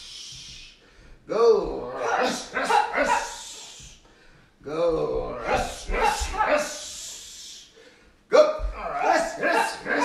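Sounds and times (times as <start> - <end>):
person shouting: 1.8 - 3.8, 5.1 - 7.0, 8.4 - 10.0.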